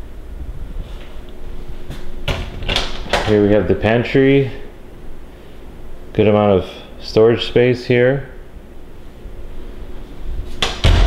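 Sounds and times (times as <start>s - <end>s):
door shutting thud: 10.6s - 11.0s.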